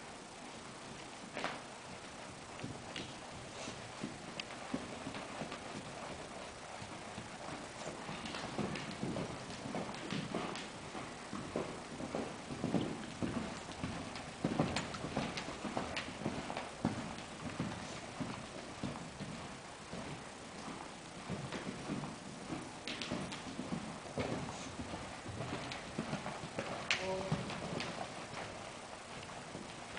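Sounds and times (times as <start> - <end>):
horse hooves cantering on dirt: 0.0 - 29.9.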